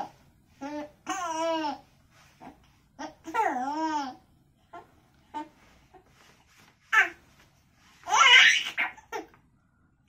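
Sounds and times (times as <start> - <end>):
baby laughing squeal: 8.1 - 9.3.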